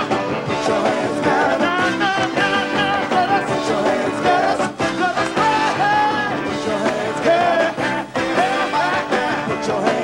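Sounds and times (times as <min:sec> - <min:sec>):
live soul band playing: 0:00.0 - 0:10.0
man singing with vibrato: 0:00.5 - 0:10.0.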